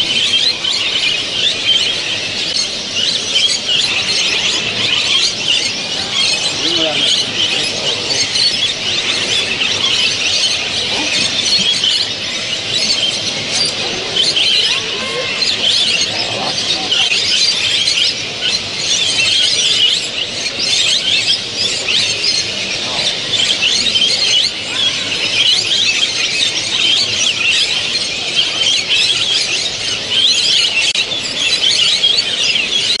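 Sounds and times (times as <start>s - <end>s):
finches chirping and trilling: 0.0s - 33.0s.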